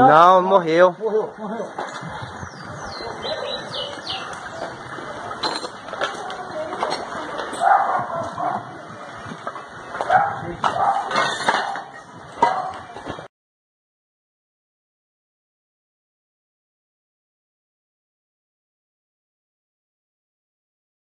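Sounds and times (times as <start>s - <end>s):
people talking indistinctly: 0.0s - 11.0s
dog barking: 7.6s - 8.7s, 10.0s - 12.8s.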